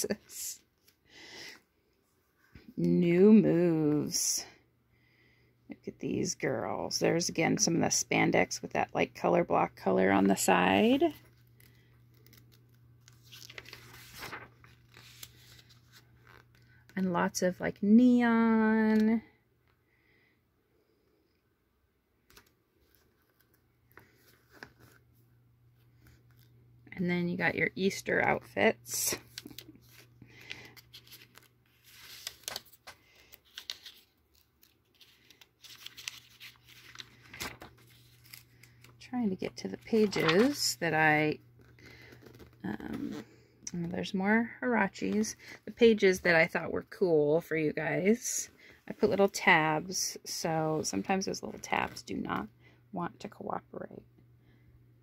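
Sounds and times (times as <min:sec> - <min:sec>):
glossy pages flipping: 0:11.3 - 0:16.8, 0:22.3 - 0:25.0, 0:29.2 - 0:40.7, 0:41.6 - 0:43.2.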